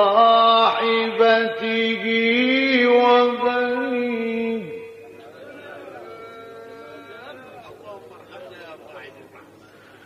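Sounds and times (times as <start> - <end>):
person reciting: 0.0 - 5.0.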